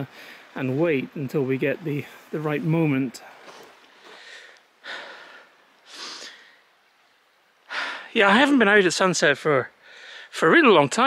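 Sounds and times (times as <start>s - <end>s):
man breathing: 0.1s - 0.6s, 3.2s - 6.7s, 7.7s - 8.1s, 9.8s - 10.3s.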